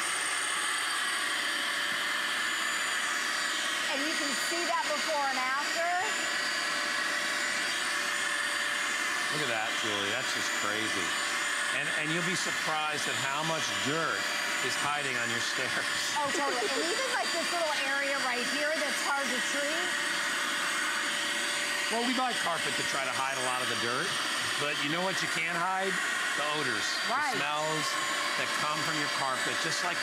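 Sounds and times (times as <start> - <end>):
carpet cleaner motor whine: 0.0 - 30.0.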